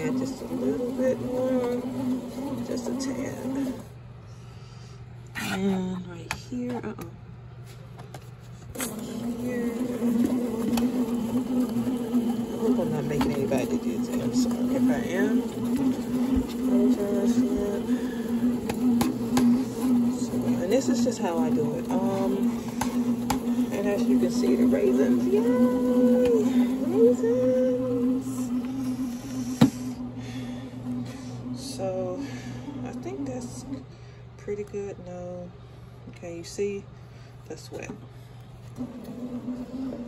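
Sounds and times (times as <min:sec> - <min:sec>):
bread machine motor humming: 0:00.0 - 0:04.3, 0:08.6 - 0:35.6, 0:38.3 - 0:40.0.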